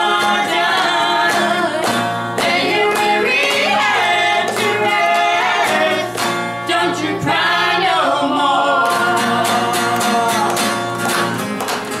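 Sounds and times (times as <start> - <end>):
women singing in harmony: 0.0 - 10.5
hand claps: 0.1 - 6.7, 9.7 - 12.0.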